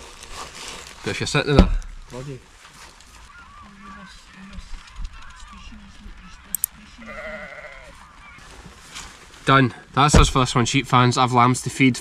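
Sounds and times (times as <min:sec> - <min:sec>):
sheep bleating: 0:07.0 - 0:08.0.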